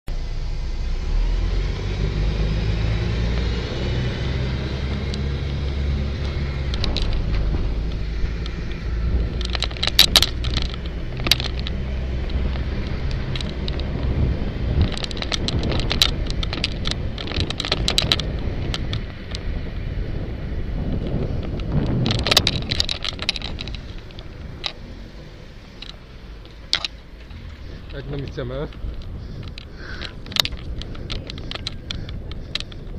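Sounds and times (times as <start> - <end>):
low rumble of traffic: 0.1 - 32.9
wind on microphone: 1.0 - 32.9
bike and camera mount rattling: 3.7 - 32.9.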